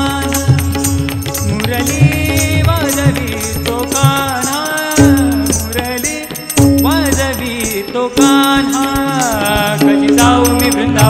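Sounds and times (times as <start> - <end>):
tabla and drums: 0.0 - 11.0
voices singing: 1.6 - 11.0.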